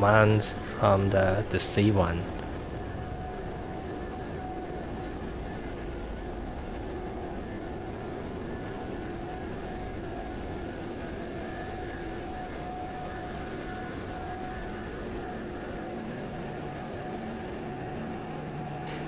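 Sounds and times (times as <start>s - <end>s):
low machinery rumble: 0.0s - 19.0s
machinery humming tones: 0.0s - 19.0s.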